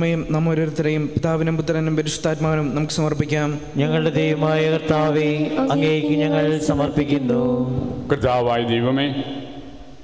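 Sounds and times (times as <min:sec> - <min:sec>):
person chanting a prayer: 0:03.8 - 0:09.2
steady low tone: 0:03.8 - 0:10.0.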